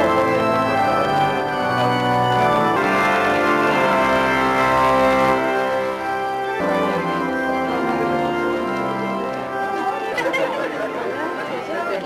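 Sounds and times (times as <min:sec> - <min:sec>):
chatter of many voices: 0:00.0 - 0:12.0
organ music: 0:00.0 - 0:12.0.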